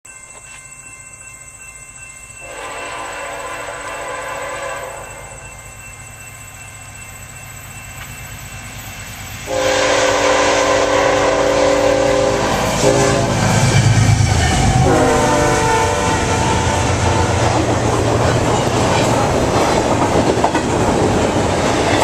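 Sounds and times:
low rumble of train: 0:00.2 - 0:22.0
locomotive air horn blasts: 0:02.4 - 0:05.3, 0:09.5 - 0:17.6.

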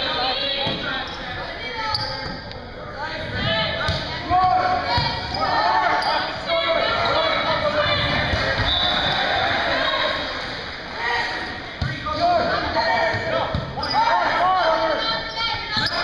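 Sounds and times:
sneakers squeaking on gym floor: 0:00.7 - 0:02.5, 0:04.9 - 0:07.4, 0:13.6 - 0:14.3, 0:15.2 - 0:16.0.

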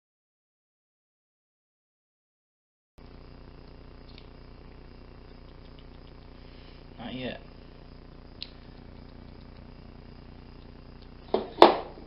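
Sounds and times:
low background hum: 0:03.0 - 0:12.0.

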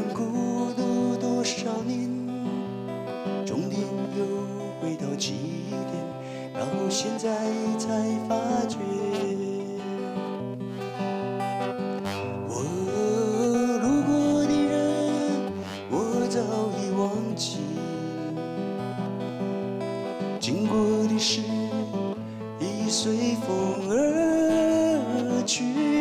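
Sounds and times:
man singing: 0:00.0 - 0:10.6, 0:12.2 - 0:19.0, 0:20.1 - 0:26.0
acoustic guitar chords: 0:00.0 - 0:26.0.

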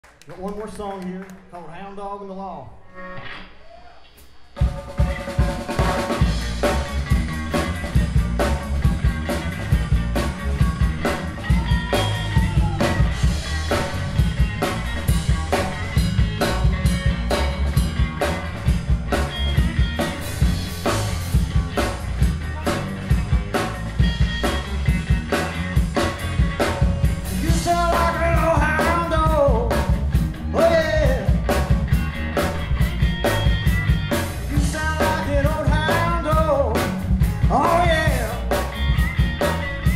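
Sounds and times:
drum kit beat: 0:04.4 - 0:39.9
bass guitar: 0:04.6 - 0:39.9
electric guitar: 0:04.6 - 0:39.9
person singing: 0:27.2 - 0:31.6, 0:34.3 - 0:38.6.

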